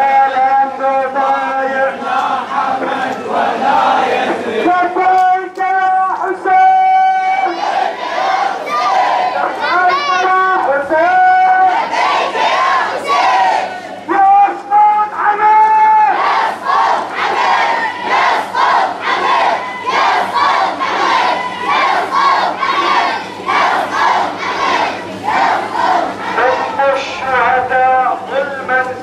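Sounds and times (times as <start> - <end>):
crowd chanting in unison: 0.7 - 4.7, 7.3 - 10.3, 11.5 - 14.0, 16.1 - 27.2.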